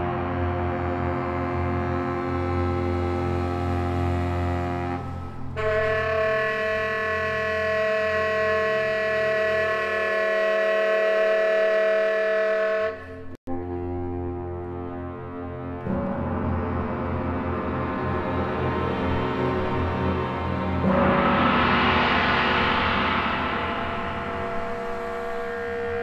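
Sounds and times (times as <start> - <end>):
baritone saxophone and orchestra: 0.0 - 6.5
low drone: 0.0 - 6.5, 13.0 - 26.0.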